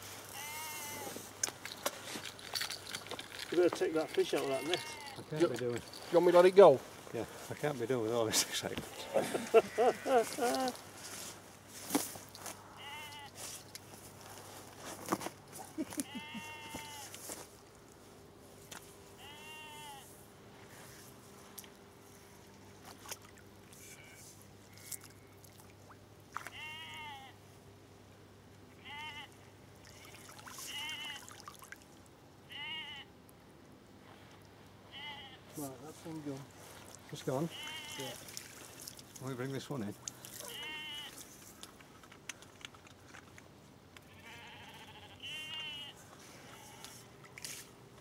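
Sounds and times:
sheep bleating: 0:00.3 - 0:01.2, 0:04.4 - 0:05.3, 0:09.2 - 0:10.7, 0:12.7 - 0:13.4, 0:16.0 - 0:17.2, 0:19.2 - 0:20.1, 0:26.5 - 0:27.4, 0:28.8 - 0:30.1, 0:30.7 - 0:31.3, 0:32.5 - 0:33.1, 0:34.9 - 0:35.4, 0:37.5 - 0:38.2, 0:40.4 - 0:41.2, 0:44.1 - 0:47.1.

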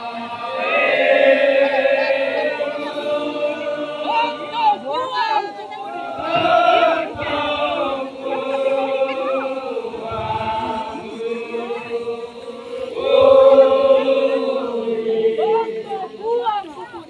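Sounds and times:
group chanting in long notes: 0:00.0 - 0:17.0.

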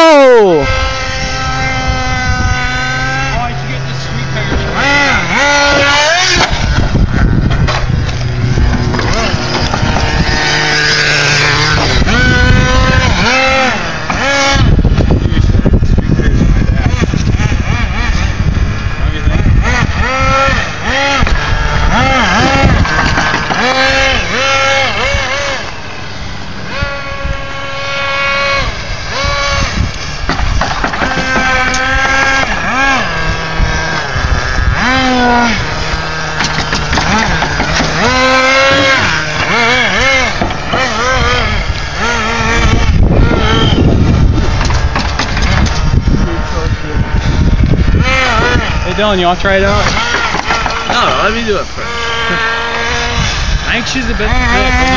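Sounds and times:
nitro rc car engine revving: 0:00.0 - 0:54.9.

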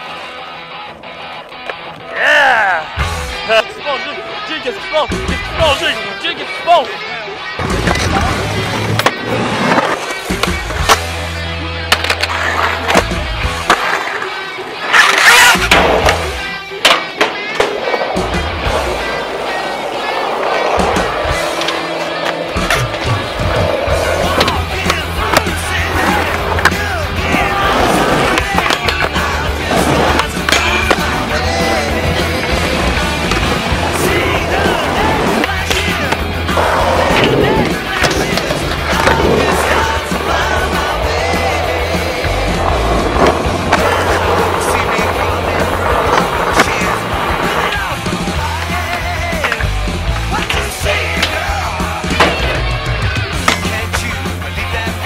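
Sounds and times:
skateboards clacking: 0:00.0 - 0:02.3, 0:03.4 - 0:55.0
skateboard wheels rolling on concrete: 0:00.0 - 0:55.0
music with steady bass line: 0:20.8 - 0:55.0.

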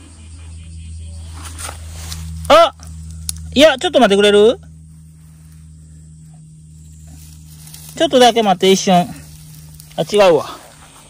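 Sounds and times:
steady low hum: 0:00.0 - 0:11.0
rustle of dry leaves and grass: 0:00.2 - 0:11.0.

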